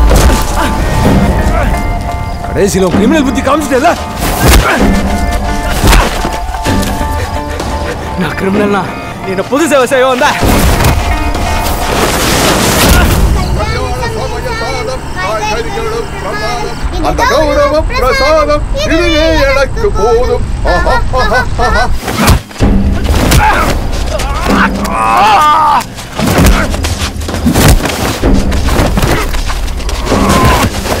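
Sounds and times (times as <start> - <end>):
loud impact hits: 10.4 - 15.2
people talking: 13.0 - 22.3.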